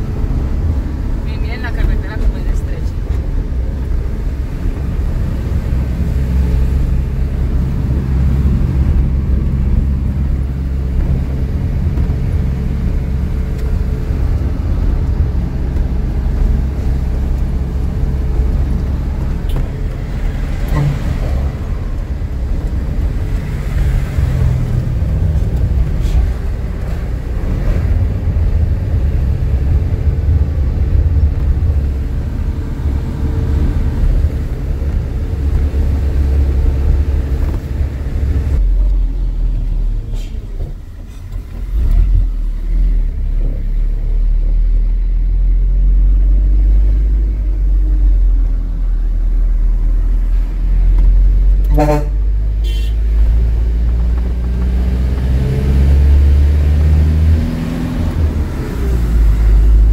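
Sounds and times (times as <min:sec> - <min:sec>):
truck engine running: 0:00.0 - 0:59.9
vehicle horn toots: 0:51.7 - 0:53.0.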